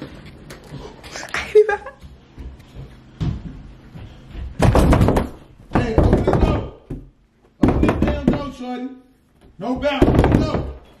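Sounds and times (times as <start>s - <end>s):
pounding on a door: 4.6s - 8.6s, 9.8s - 10.9s.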